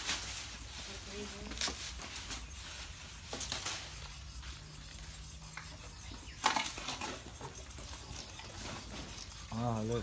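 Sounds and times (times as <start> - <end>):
hand saw rasping on ivory: 3.7 - 10.0.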